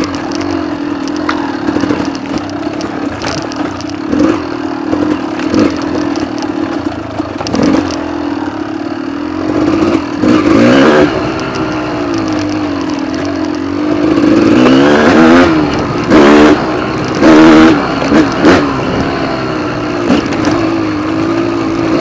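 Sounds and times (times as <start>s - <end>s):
clattering knocks of bike jolting: 0.0s - 8.0s
dirt bike engine running: 0.0s - 22.0s.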